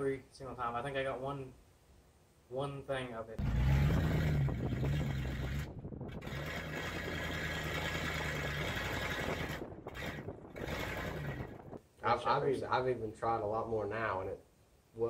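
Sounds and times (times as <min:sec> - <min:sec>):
car engine running: 0:03.4 - 0:11.8.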